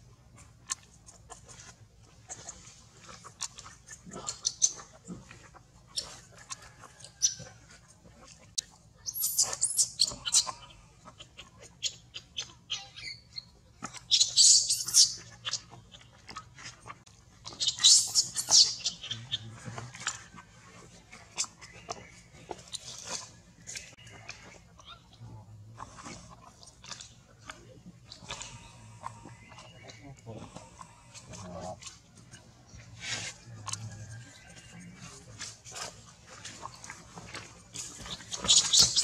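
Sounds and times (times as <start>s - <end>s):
infant monkey crying: 9.1s - 10.9s.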